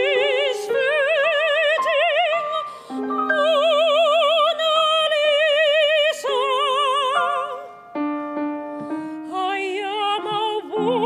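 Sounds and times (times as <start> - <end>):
woman singing operatically: 0.0 - 7.7, 9.3 - 11.0.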